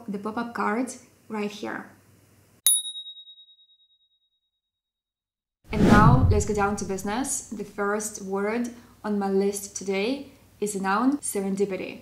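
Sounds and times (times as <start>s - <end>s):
bright bell ding: 2.7s - 3.8s.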